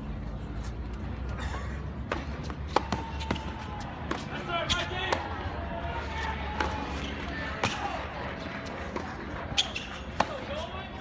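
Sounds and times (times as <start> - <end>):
tennis ball bouncing on court: 2.0 - 5.4, 8.9 - 10.6
tennis ball struck by rackets: 2.0 - 5.4, 8.9 - 10.6.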